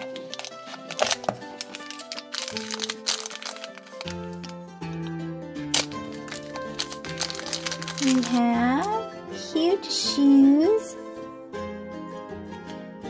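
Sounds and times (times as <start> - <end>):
plastic wrapper crinkling: 0.0 - 4.6, 5.7 - 9.0.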